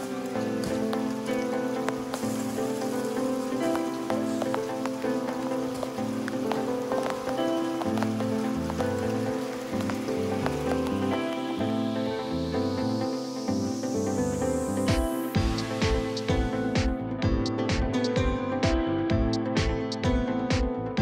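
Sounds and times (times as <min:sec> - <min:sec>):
rain on concrete: 0:00.0 - 0:17.0
background music: 0:00.0 - 0:21.0.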